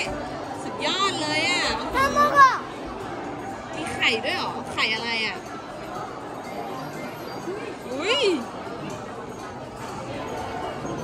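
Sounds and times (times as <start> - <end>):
background chatter: 0.0 - 11.0
music: 0.0 - 11.0
child talking excitedly: 1.9 - 2.7.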